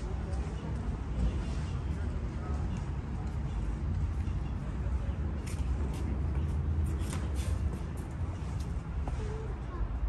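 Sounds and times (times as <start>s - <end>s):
footsteps on stone paving: 5.2s - 9.5s.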